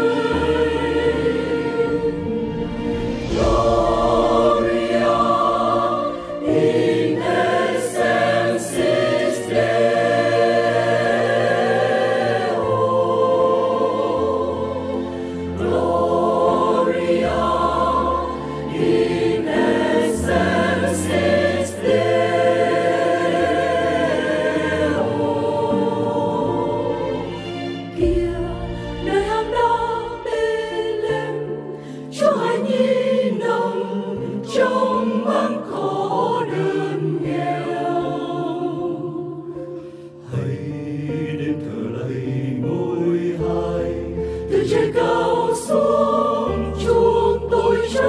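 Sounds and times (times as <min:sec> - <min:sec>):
low accompanying notes: 0:00.0 - 0:31.3
mixed choir singing: 0:00.0 - 0:48.0.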